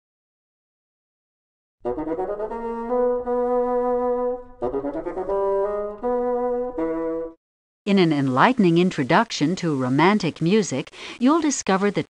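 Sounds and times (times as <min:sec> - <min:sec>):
solo bassoon melody: 0:01.8 - 0:07.4.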